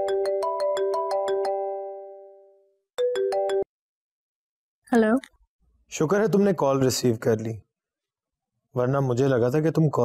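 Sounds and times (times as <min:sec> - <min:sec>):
mobile phone ringtone: 0:00.0 - 0:03.7.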